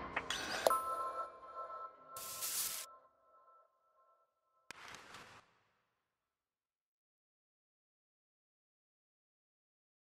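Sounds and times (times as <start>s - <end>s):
high electronic tones: 0.7s - 3.0s.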